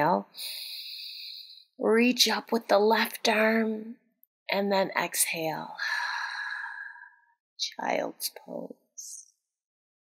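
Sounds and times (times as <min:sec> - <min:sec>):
woman speaking: 0:00.0 - 0:06.5, 0:07.6 - 0:09.3.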